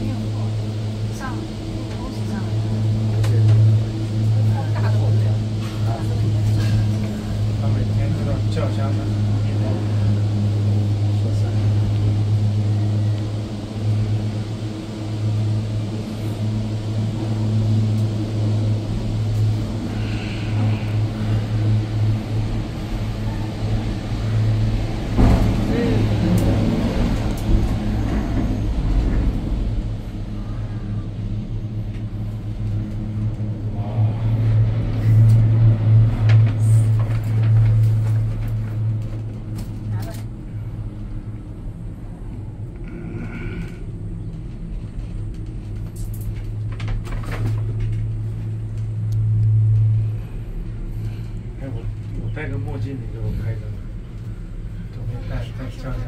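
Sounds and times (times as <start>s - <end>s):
cable car cabin hum: 0.0s - 56.0s
rumble and rattle: 0.0s - 56.0s.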